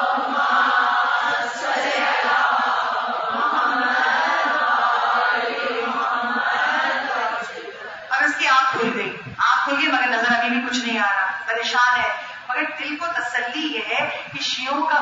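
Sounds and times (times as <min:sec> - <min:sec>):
congregation chanting: 0:00.0 - 0:08.1.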